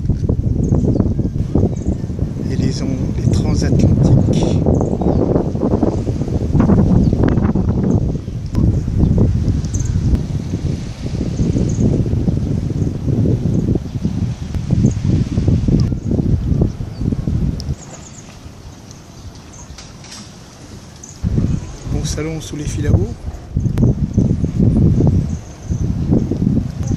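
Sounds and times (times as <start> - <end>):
wind buffeting microphone: 0.0 - 26.9.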